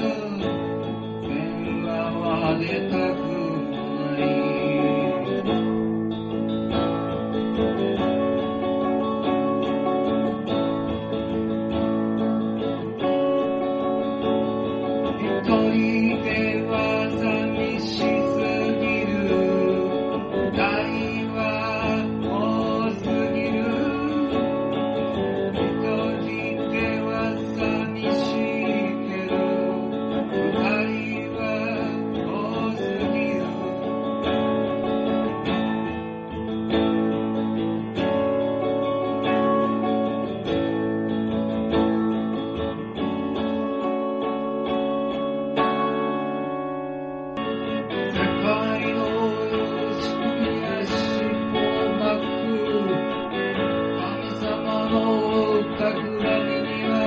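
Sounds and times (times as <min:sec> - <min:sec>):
strummed acoustic guitar: 0:00.0 - 0:57.0.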